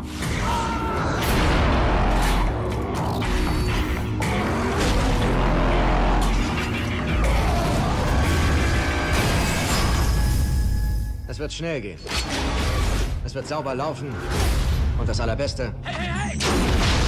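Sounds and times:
dramatic trailer music: 0.0s - 17.0s.

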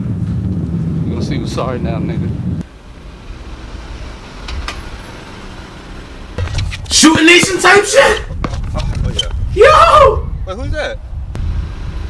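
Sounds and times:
car engine running: 2.7s - 8.7s.

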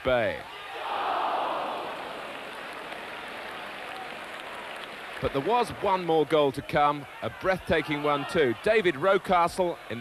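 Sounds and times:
stadium crowd reacting: 0.4s - 10.0s.

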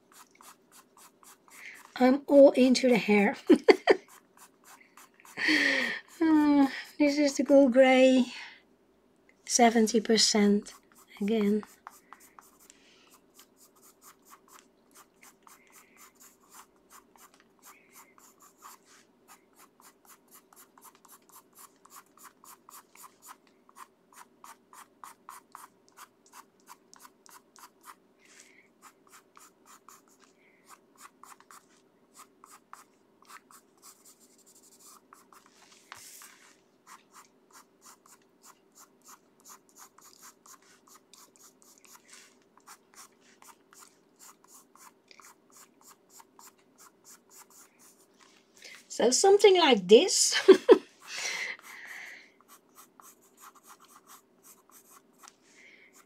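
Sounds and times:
pencil scratching on paper: 0.0s - 3.3s, 3.9s - 5.4s, 9.7s - 48.2s, 52.4s - 55.3s.

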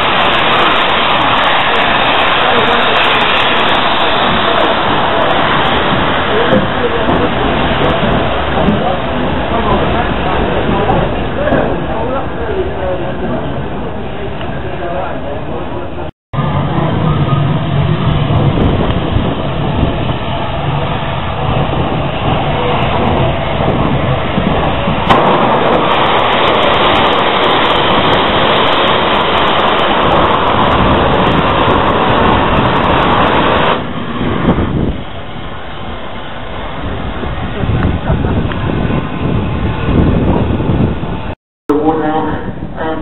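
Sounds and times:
steam hissing: 0.0s - 13.1s, 16.4s - 40.5s.

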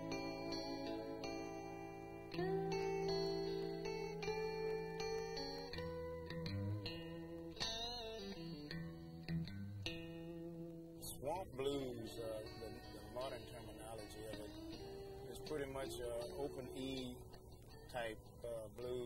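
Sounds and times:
blues guitar playing: 0.0s - 19.0s
man speaking: 11.0s - 14.7s, 15.3s - 17.3s, 17.9s - 19.0s.

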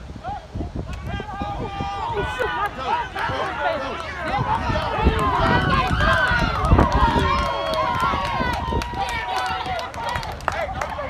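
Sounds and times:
long drawn-out yell: 0.2s - 11.0s
spectators shouting: 0.2s - 11.0s.

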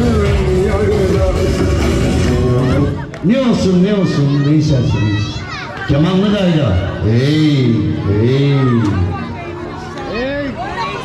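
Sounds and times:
children's high voices: 3.8s - 7.1s.

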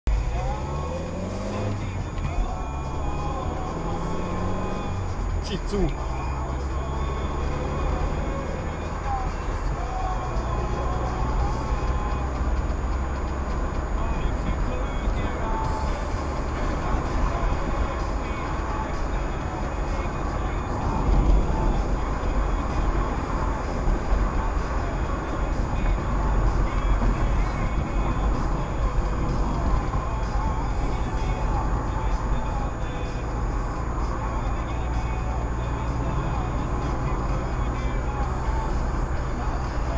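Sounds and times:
car road and engine rumble: 0.0s - 39.9s.

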